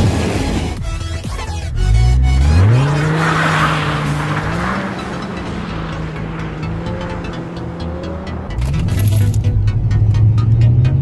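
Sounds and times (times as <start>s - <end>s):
car engine revving: 0.0s - 11.0s
music: 0.0s - 11.0s.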